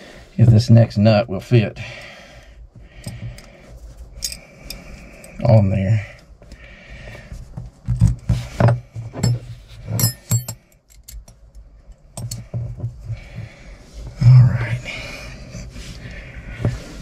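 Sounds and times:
metal clinks of nut and wrench: 4.2 - 5.4, 9.2 - 11.4.

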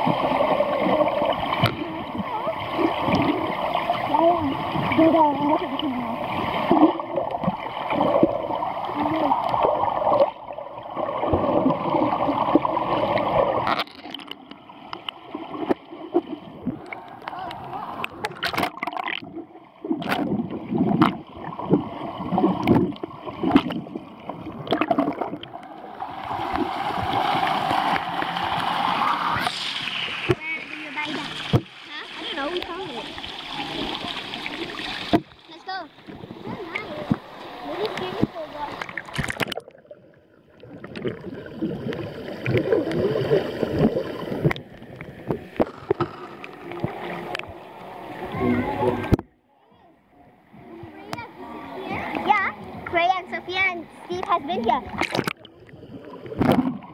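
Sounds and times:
underwater sloshing and bubbling: 0.0 - 56.9
children's voices: 0.8 - 3.2, 3.9 - 6.2, 8.9 - 9.5, 17.2 - 18.1, 30.2 - 34.7, 35.4 - 38.8, 48.2 - 55.0
knocks underwater: 1.5 - 2.3, 18.1 - 25.7, 29.4 - 31.8, 35.0 - 35.4, 37.0 - 39.9, 43.8 - 47.6, 48.4 - 49.4, 54.2 - 55.5, 56.2 - 56.9.

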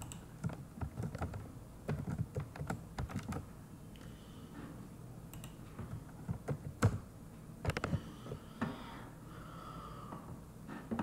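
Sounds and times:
keyboard typing clicks: 0.0 - 3.4, 5.3 - 5.6.

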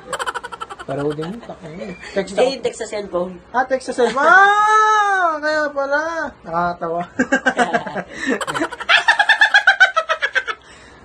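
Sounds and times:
man laughing high-pitched: 0.0 - 1.6, 8.3 - 9.7.

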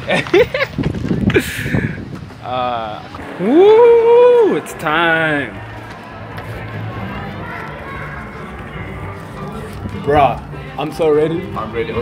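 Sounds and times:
indistinct voices: 2.5 - 12.0
low music from speakers: 3.4 - 12.0.

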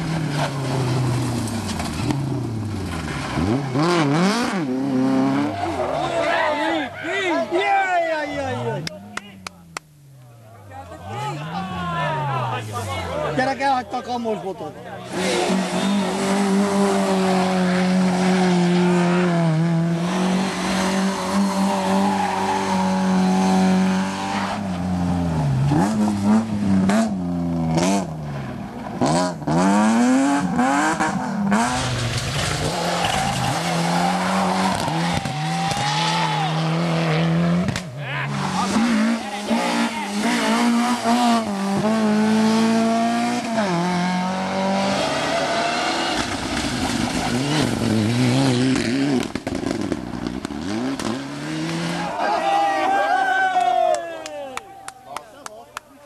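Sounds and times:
rally car engines revving: 0.0 - 53.0.

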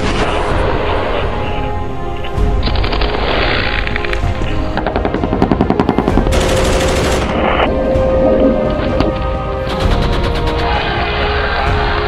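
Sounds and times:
background music: 0.0 - 12.0
automatic gunfire: 4.9 - 7.4.

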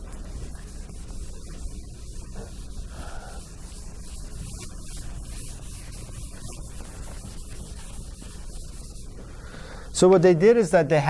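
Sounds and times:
eraser wiping a whiteboard: 0.0 - 9.4.

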